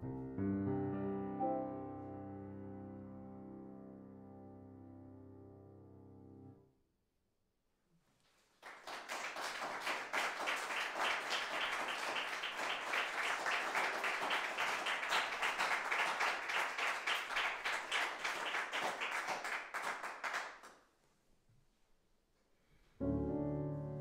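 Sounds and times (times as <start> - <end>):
audience applauding: 8.5 - 20.8.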